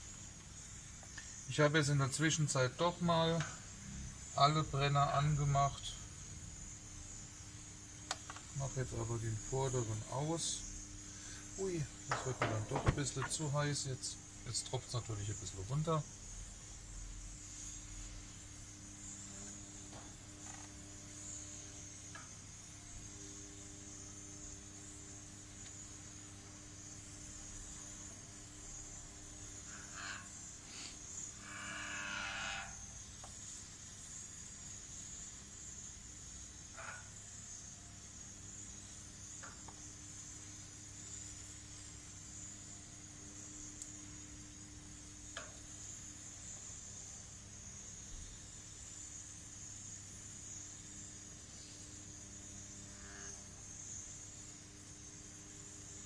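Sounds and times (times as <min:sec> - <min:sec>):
gas grill hiss: 0:00.0 - 0:56.0.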